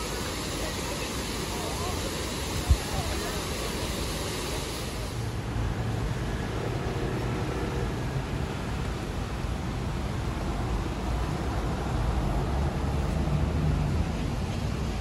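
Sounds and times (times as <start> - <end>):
bus engine rumble: 0.0 - 15.0
fountain water splashing: 0.0 - 15.0
road noise: 0.0 - 15.0.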